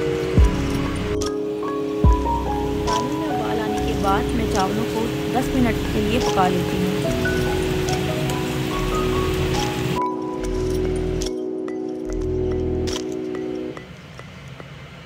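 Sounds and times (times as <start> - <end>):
boiling water hissing: 0.0 - 11.2
soft chiming music: 0.0 - 14.8.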